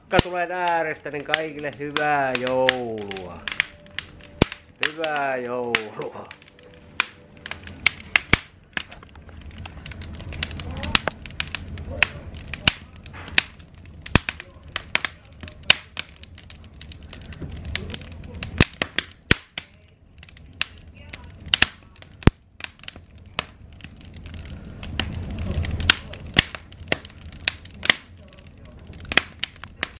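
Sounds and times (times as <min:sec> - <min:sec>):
fire crackling and popping: 0:00.0 - 0:30.0
low rush of flame: 0:00.0 - 0:30.0.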